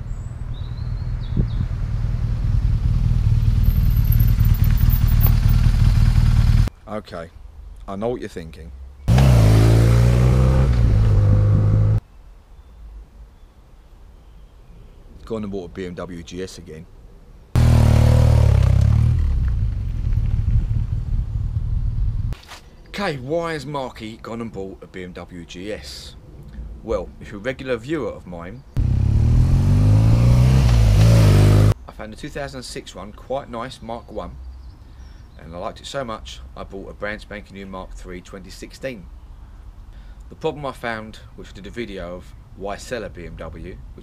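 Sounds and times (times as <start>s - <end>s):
motorcycle engine rumble: 0.0s - 6.7s, 9.1s - 12.0s, 17.6s - 22.4s, 28.8s - 31.8s.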